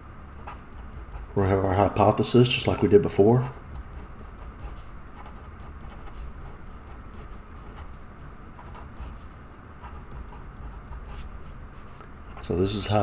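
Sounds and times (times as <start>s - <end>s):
felt-tip marker writing on paper: 3.4s - 12.4s.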